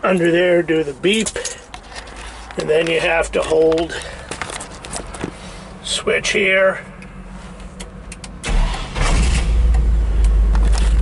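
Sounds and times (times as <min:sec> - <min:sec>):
key fob clicks and rattles: 0:01.2 - 0:05.3.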